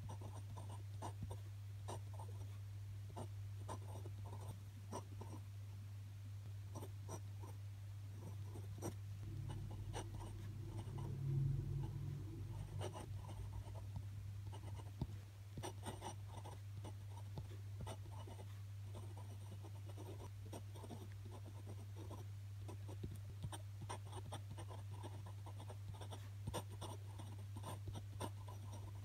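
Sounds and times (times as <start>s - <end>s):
pen scratching on paper: 0.0s - 2.5s, 3.2s - 5.4s, 8.2s - 11.1s, 11.8s - 29.0s
steady low hum: 0.0s - 29.0s
low drone: 9.2s - 13.2s.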